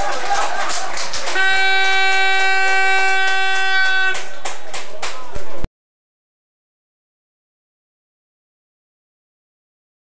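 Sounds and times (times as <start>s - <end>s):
air horn blast: 1.3s - 4.4s.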